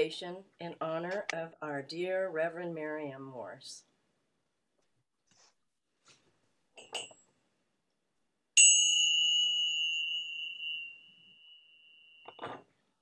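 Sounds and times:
metal chime ringing: 8.6s - 12.6s.

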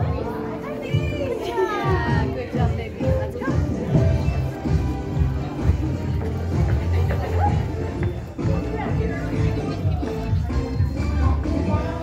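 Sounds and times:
children's voices: 0.0s - 4.1s
upbeat song with singing: 0.0s - 12.0s.

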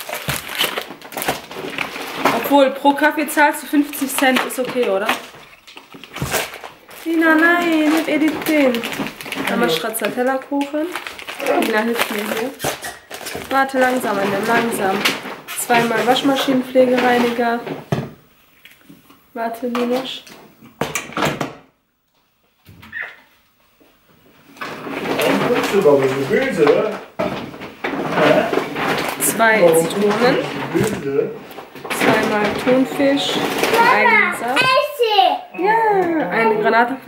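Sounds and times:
plastic packaging rustling: 0.0s - 20.6s, 24.2s - 37.0s.

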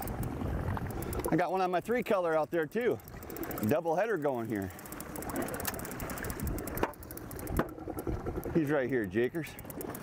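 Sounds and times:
waves and wind: 0.0s - 10.0s.

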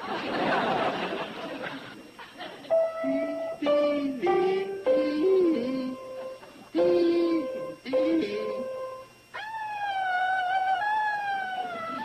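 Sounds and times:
dog howling: 9.3s - 12.0s.

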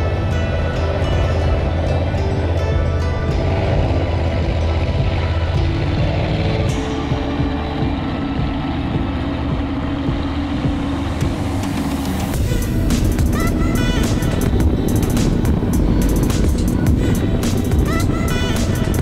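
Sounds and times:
background music: 0.0s - 19.0s
boat engines rumbling: 0.0s - 19.0s
rushing water and wind: 0.0s - 19.0s.

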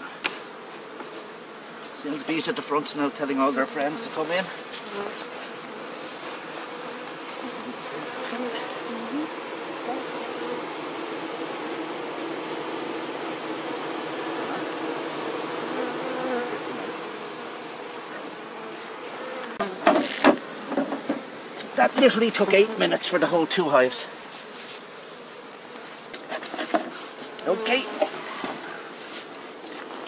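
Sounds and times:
honeybees buzzing: 0.0s - 30.0s.

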